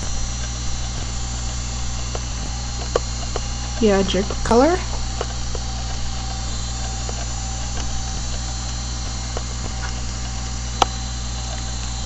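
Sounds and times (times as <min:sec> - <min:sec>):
electrical hum and hiss: 0:00.0 - 0:12.0.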